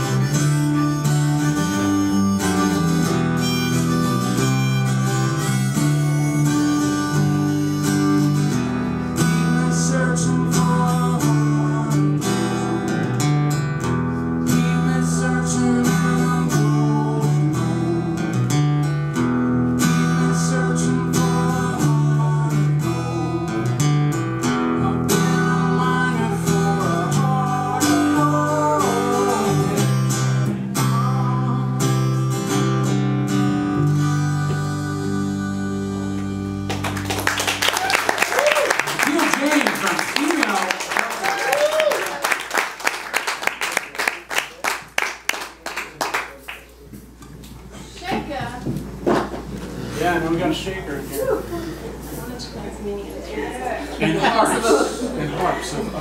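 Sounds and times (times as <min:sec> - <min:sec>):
acoustic guitar strumming: 0:00.0 - 0:37.6.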